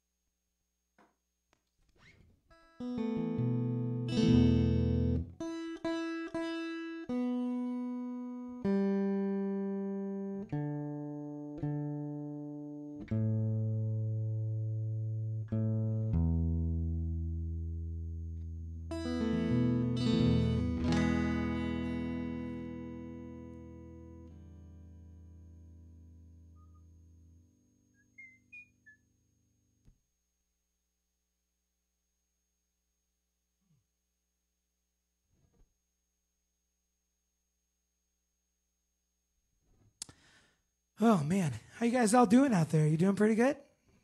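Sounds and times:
guitar plucked notes and chords: 0:02.5 - 0:29.0.

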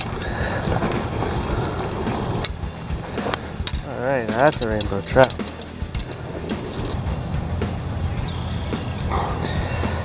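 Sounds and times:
wind rumble on microphone: 0:00.0 - 0:10.0
landing net clicks and knocks: 0:03.2 - 0:07.0.

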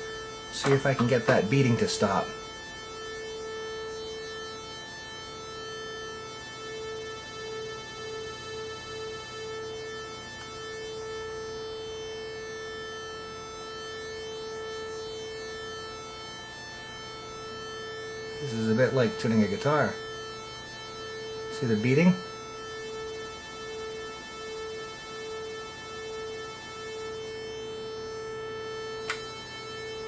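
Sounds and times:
buzzy synthesizer tone: 0:00.0 - 0:30.0.

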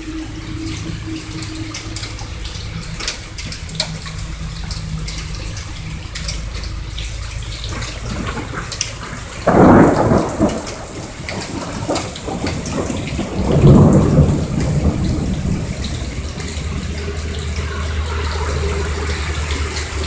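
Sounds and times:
steady rain: 0:00.0 - 0:20.0
thunder rumble: 0:00.0 - 0:20.0
thunder crack: 0:07.7 - 0:20.0.

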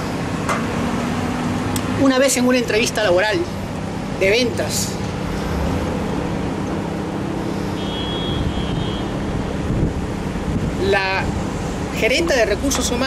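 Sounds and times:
street traffic rumble: 0:00.0 - 0:13.0
wind on microphone: 0:08.3 - 0:11.5.

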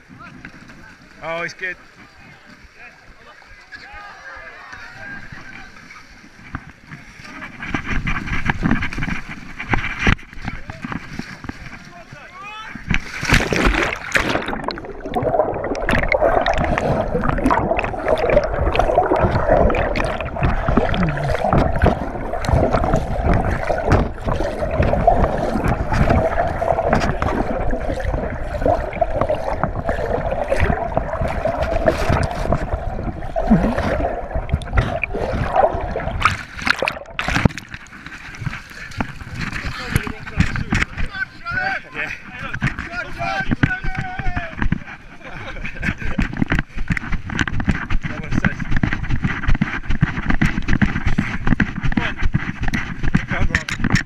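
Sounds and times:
big water splash: 0:12.7 - 0:41.1
muffled underwater gurgling: 0:12.7 - 0:41.2.

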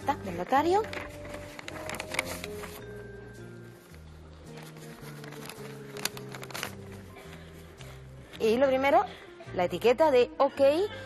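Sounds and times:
soft background music: 0:00.0 - 0:11.0
paper crackling: 0:00.6 - 0:03.0, 0:04.4 - 0:07.9.

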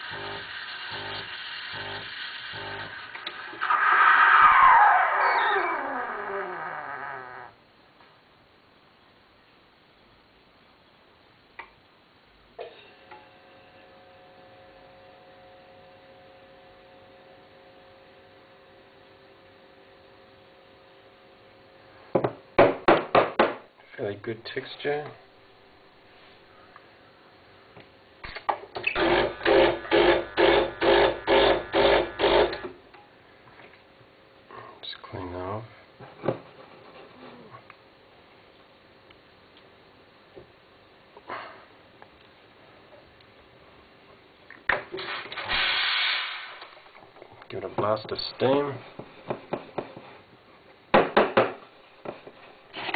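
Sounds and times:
steam wand hissing: 0:00.0 - 0:04.0.

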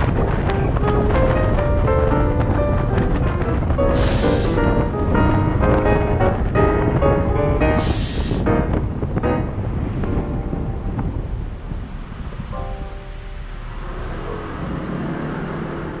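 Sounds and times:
music: 0:00.0 - 0:16.0
wind and road rumble: 0:00.0 - 0:16.0
short sharp hiss: 0:03.9 - 0:04.6, 0:07.8 - 0:08.5.

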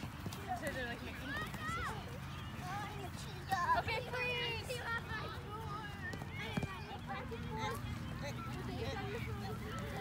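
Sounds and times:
children calling and chattering: 0:00.0 - 0:10.0
balls tapped on grass: 0:06.0 - 0:07.0.

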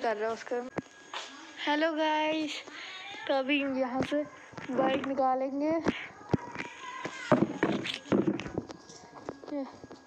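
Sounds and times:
person's voice: 0:01.6 - 0:08.3.

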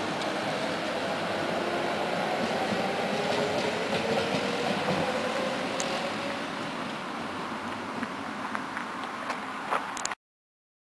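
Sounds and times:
electric tram rolling on track: 0:00.0 - 0:10.2.

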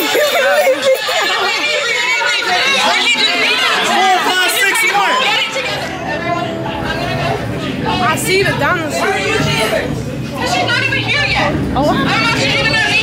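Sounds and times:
people chattering: 0:00.0 - 0:13.0
low steady rumble: 0:05.6 - 0:13.0.

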